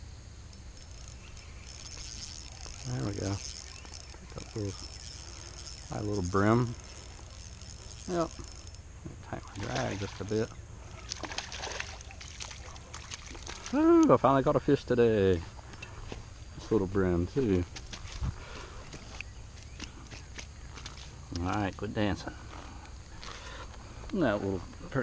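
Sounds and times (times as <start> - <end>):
fish flopping on grass: 9.5 - 13.8.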